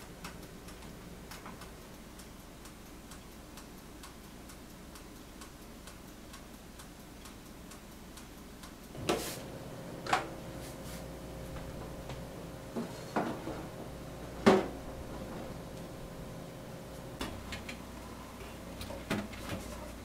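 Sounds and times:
mechanical timer ticking: 0.0s - 9.0s
oven door scrape and clunk: 9.0s - 9.5s, 12.8s - 15.6s.

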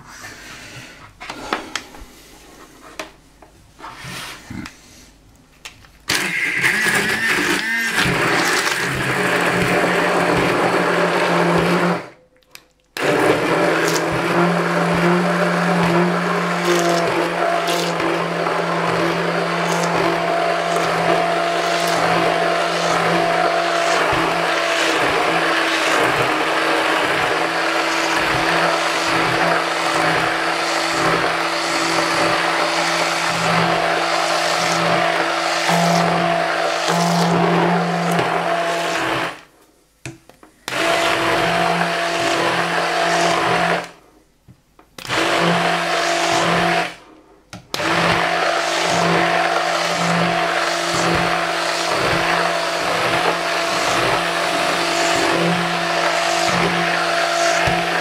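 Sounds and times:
immersion blender running: 6.1s - 12.2s, 13.0s - 39.5s, 40.7s - 44.0s, 45.0s - 47.1s, 47.7s - 58.0s.

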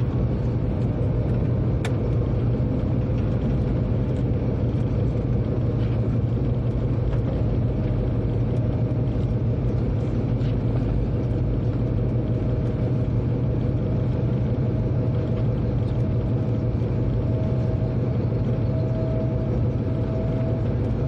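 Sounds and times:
train rumbling on track: 0.0s - 21.0s.

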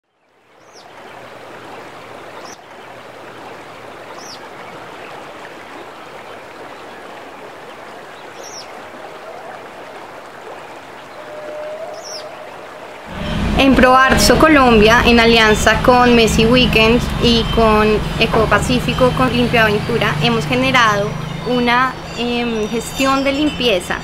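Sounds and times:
running water rushing: 0.2s - 24.0s
high bird chirp: 11.1s - 12.6s, 18.9s - 24.0s.

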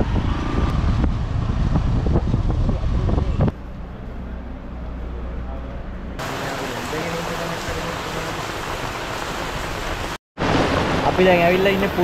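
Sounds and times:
heavy rain on paved ground: 6.2s - 12.0s.

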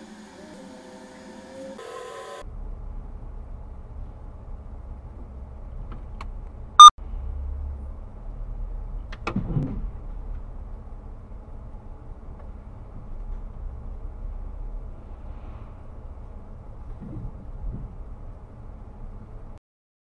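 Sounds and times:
vehicle rumble: 2.4s - 19.6s.

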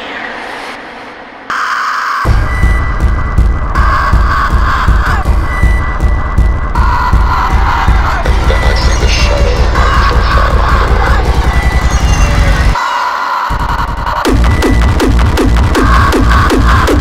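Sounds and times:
loud synth lead: 0.0s - 17.0s
distorted kick drum and bass: 2.2s - 12.8s, 13.5s - 17.0s.

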